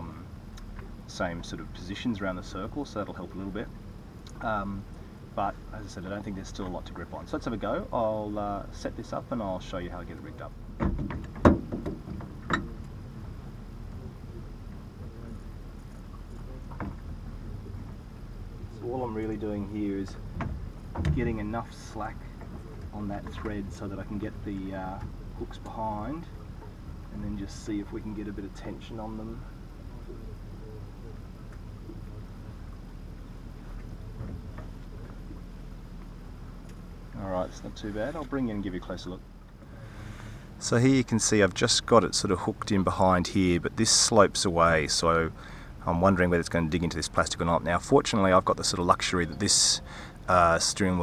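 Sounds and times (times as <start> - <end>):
low background rumble: 0.0 - 51.0.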